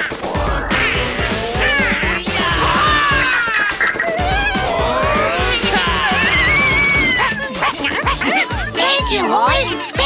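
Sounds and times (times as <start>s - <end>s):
upbeat cartoon music: 0.0s - 10.0s.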